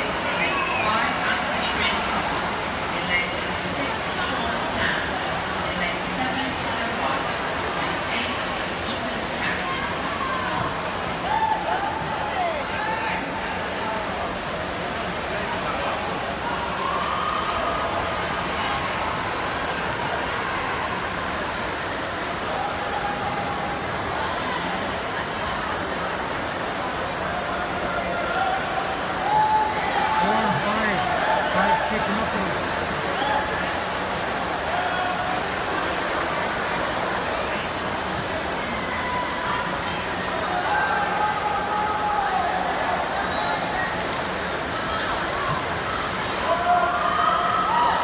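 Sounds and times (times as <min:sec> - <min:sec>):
crowd shouting and cheering: 0:10.0 - 0:14.1, 0:22.4 - 0:25.0, 0:27.2 - 0:33.8, 0:38.4 - 0:44.0, 0:44.7 - 0:48.0
long drawn-out shouts: 0:38.6 - 0:43.7.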